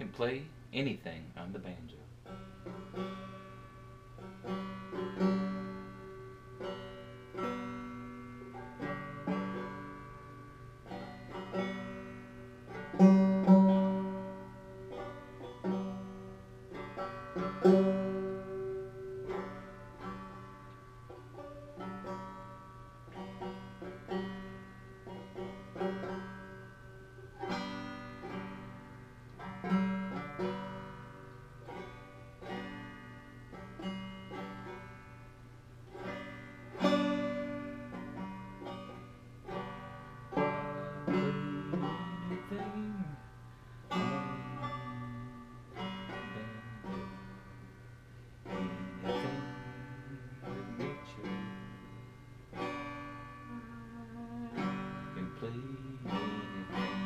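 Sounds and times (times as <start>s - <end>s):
solo banjo playing: 0.0s - 57.0s.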